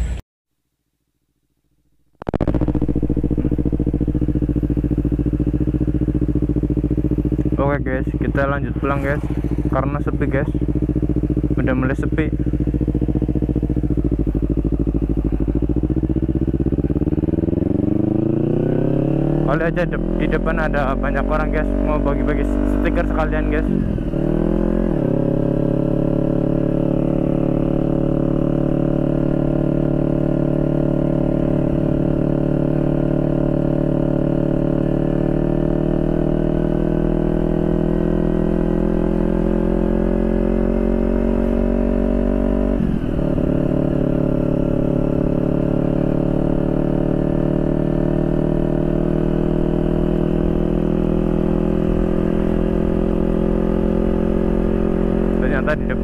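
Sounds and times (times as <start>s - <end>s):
motorcycle engine running: 2.1s - 56.0s.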